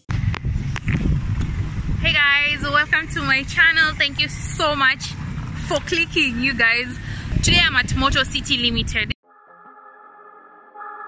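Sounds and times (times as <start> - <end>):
low rumble of street noise: 0.0 - 9.2
woman talking: 2.0 - 9.2.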